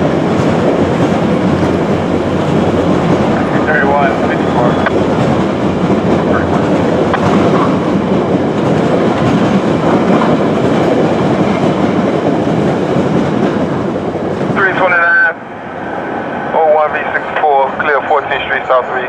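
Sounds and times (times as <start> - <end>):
passenger train rolling past: 0.0 - 19.0.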